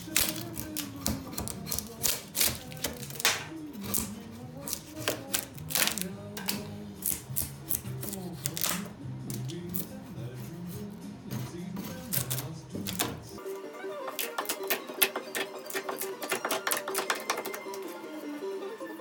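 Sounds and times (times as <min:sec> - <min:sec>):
metal file scraping wood: 0:00.0 - 0:18.0
background music: 0:00.0 - 0:19.0.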